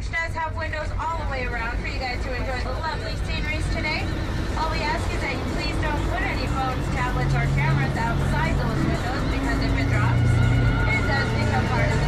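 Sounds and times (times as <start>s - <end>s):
low rumble: 0.0s - 12.0s
people talking: 0.0s - 12.0s.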